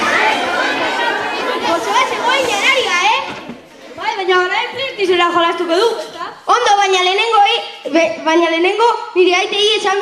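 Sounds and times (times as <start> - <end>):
children chattering in a hall: 0.0 - 10.0.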